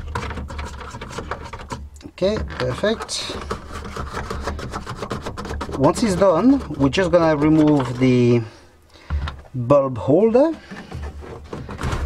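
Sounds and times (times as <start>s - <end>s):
plastic rubbing and clicking: 0.0s - 9.6s, 10.4s - 12.0s.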